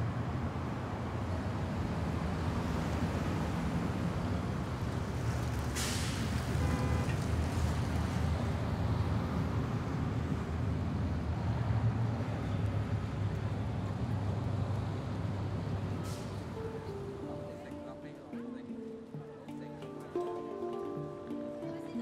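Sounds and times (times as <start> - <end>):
city traffic rumble: 0.0 - 22.0
short burst of hiss: 5.8 - 6.3.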